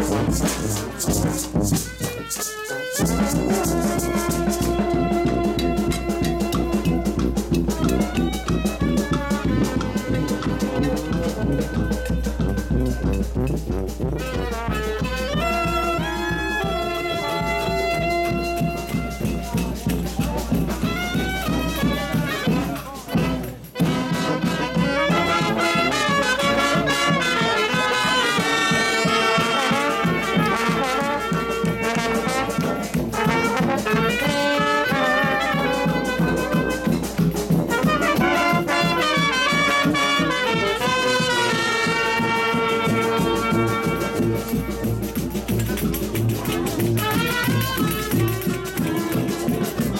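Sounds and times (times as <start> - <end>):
brass band playing: 0.0 - 49.9.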